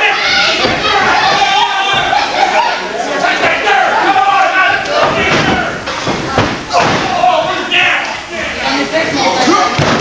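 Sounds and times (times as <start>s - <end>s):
loud shouting voices: 0.0s - 10.0s.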